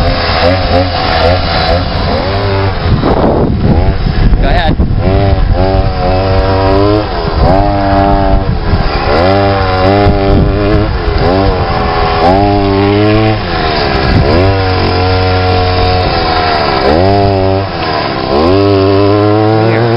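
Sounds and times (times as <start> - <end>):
car sliding across dirt: 0.0 - 19.9
small gasoline engine revving: 0.0 - 19.9.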